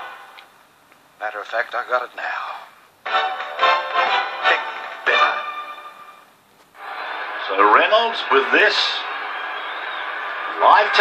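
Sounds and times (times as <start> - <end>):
stadium crowd noise: 6.8 - 11.0.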